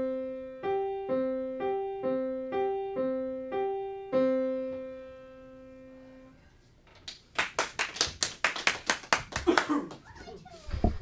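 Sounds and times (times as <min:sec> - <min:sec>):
small group clapping: 0:07.0 - 0:10.3.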